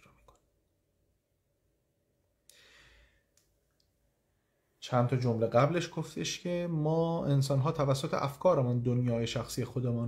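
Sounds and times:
man speaking: 4.8s - 10.0s.

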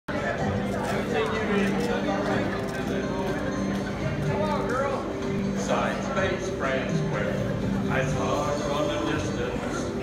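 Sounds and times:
crowd talking: 0.1s - 10.0s.

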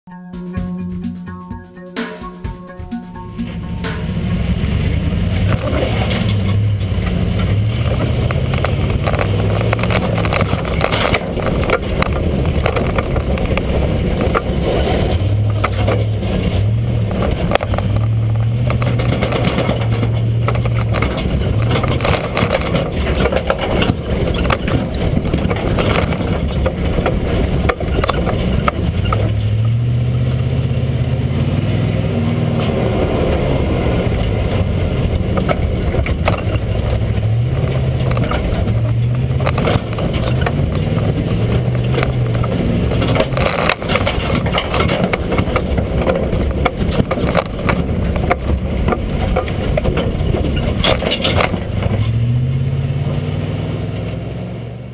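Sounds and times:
road and chassis noise: 0.0s - 54.9s
truck engine revving: 0.2s - 54.9s.

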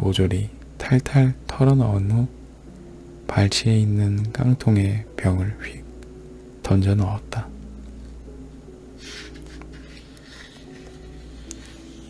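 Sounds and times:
low sustained background music: 0.0s - 12.0s
soft hiss: 0.0s - 12.0s.

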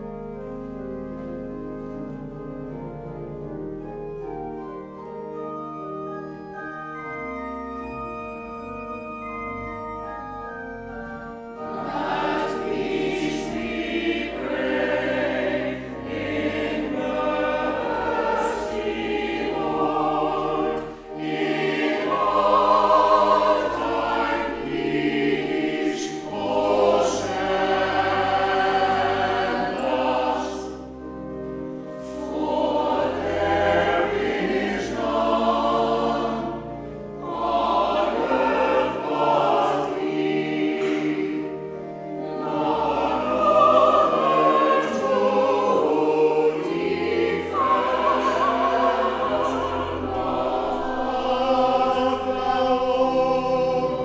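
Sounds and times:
low organ notes: 0.0s - 54.0s
mixed choir singing: 11.6s - 31.0s, 32.0s - 54.0s.

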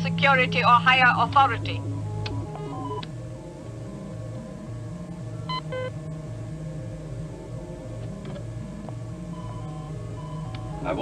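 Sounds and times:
low two-pitch electronic drone: 0.0s - 11.0s
bright electronic bleeps: 2.4s - 3.0s, 5.5s - 5.9s, 9.3s - 11.0s.

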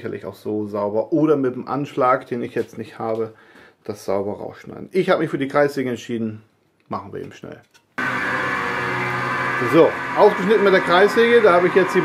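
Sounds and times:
man talking: 0.0s - 7.7s, 9.6s - 12.0s
electric motor running: 8.0s - 12.0s.

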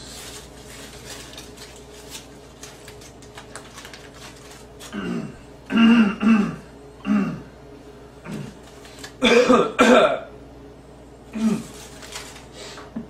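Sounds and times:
man clearing throat and coughing: 5.0s - 7.5s, 9.2s - 10.3s.

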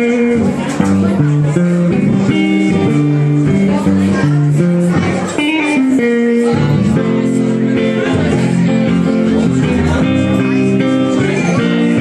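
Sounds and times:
electric guitar picked notes: 0.0s - 12.0s
low bass line: 0.0s - 12.0s.

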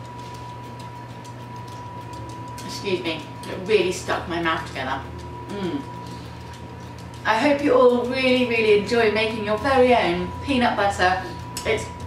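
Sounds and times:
low electrical hum: 0.0s - 12.0s
woman's voice: 2.6s - 5.9s, 7.2s - 12.0s.

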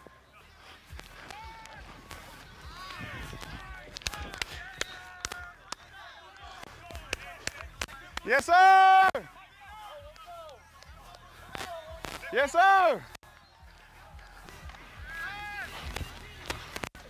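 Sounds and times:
distant voices and shouts: 0.0s - 16.9s.

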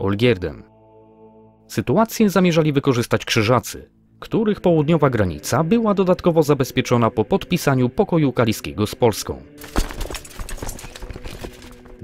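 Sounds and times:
quiet background music: 0.0s - 12.0s
horse hooves clip-clopping: 9.6s - 12.0s.

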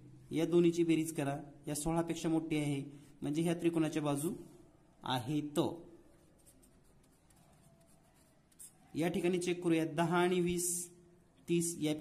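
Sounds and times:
marker scratching on paper: 6.1s - 9.4s.

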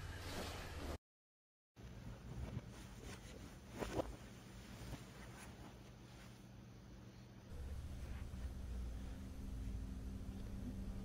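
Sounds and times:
low steady room hum: 1.8s - 11.0s
rustling of bed linen: 2.0s - 9.7s.

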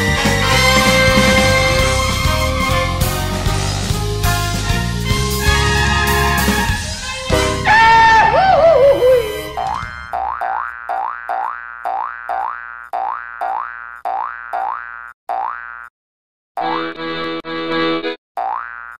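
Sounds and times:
chord hits: 6.6s - 10.1s
rising boing sound effect: 7.8s - 15.7s.

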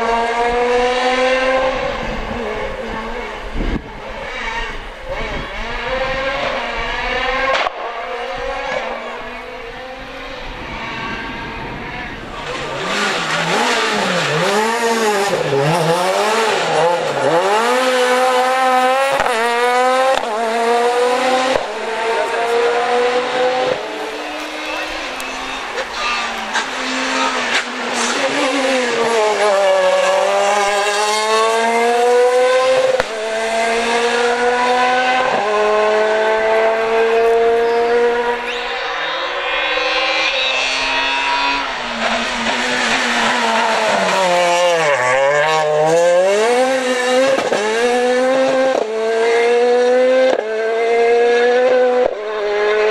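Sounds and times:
rally car engine revving hard: 0.0s - 52.9s.

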